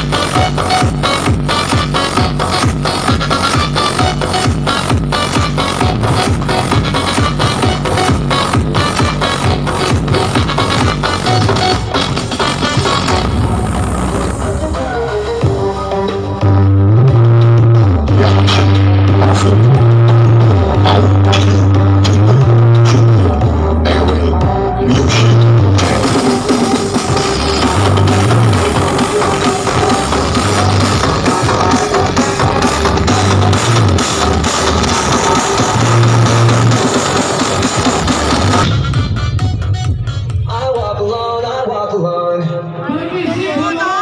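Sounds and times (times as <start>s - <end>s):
heavy bass line: 0.0s - 42.0s
dense high percussion: 2.2s - 41.2s.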